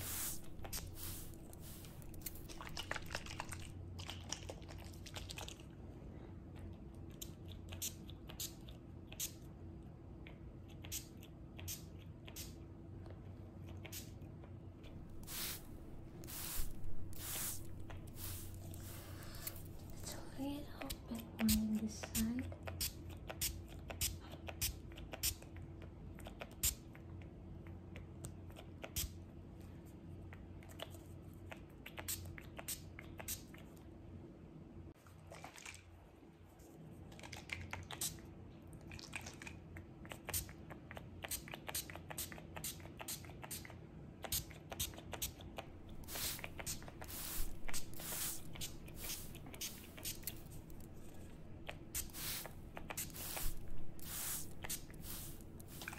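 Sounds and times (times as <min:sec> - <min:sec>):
low steady hum: 0:00.0 - 0:04.6, 0:14.8 - 0:22.6, 0:45.6 - 0:55.9.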